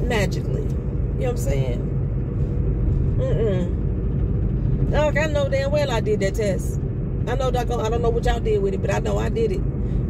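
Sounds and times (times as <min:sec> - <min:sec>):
car road and engine rumble: 0:00.0 - 0:10.0.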